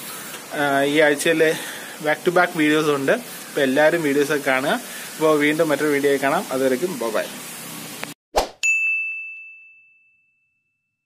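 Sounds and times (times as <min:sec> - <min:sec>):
bright high ding: 0:08.6 - 0:11.0.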